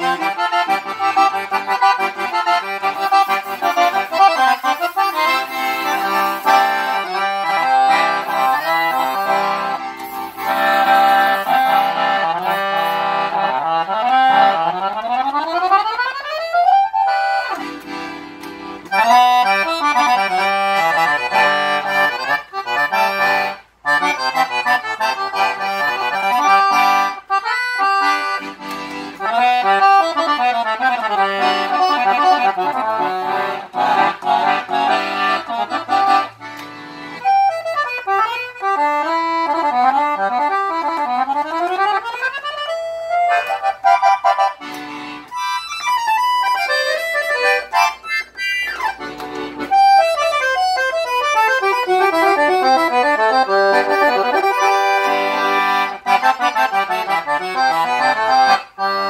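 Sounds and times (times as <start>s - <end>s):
piano accordion melody with chords: 0.0s - 59.0s.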